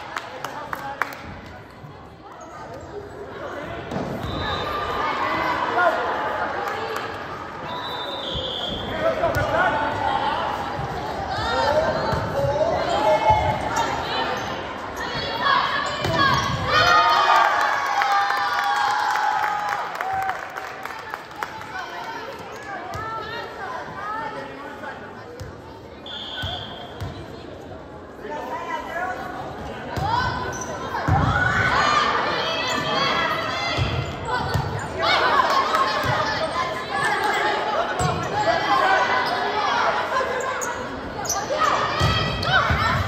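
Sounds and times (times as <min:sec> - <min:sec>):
spectators shouting and cheering: 0:04.0 - 0:23.6
short high whistle: 0:07.6 - 0:08.9, 0:26.1 - 0:27.0.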